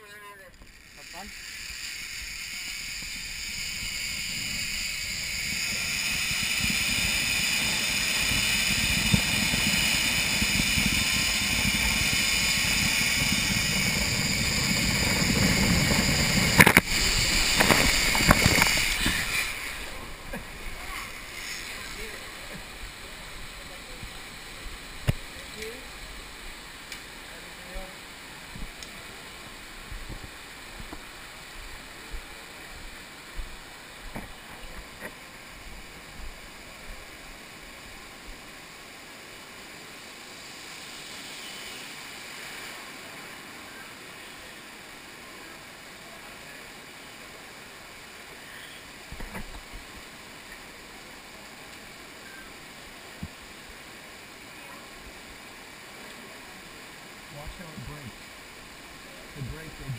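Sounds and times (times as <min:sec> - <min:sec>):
zip-line trolley whine on cable: 0:00.6 - 0:59.9
wind on microphone: 0:02.8 - 0:23.0, 0:29.8 - 0:31.0.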